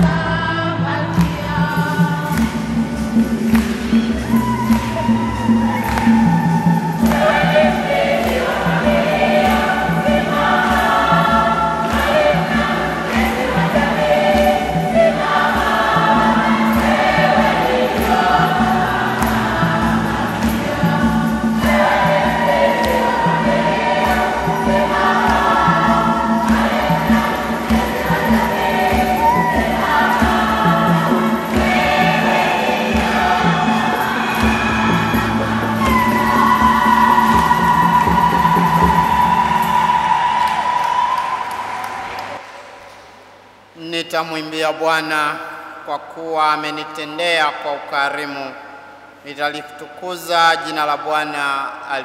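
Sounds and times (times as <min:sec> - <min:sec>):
women's choir singing a hymn: 0:00.0 - 0:42.6.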